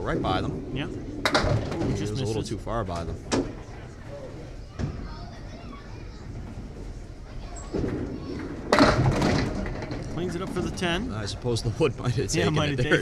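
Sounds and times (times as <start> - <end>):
bowling ball rolling rumble: 0.0 - 2.2, 6.3 - 11.3
bowling ball knocking onto lane: 1.2 - 2.0, 8.6 - 10.6.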